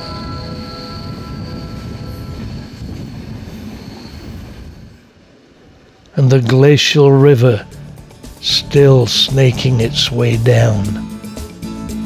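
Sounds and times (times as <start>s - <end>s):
high wheel squeal: 0.0s - 5.3s
train wheels rumbling on track: 0.0s - 11.5s.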